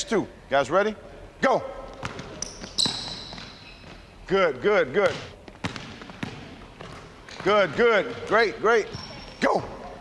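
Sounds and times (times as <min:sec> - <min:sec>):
basketballs bouncing on hardwood floor: 0:01.9 - 0:04.1, 0:05.0 - 0:09.7.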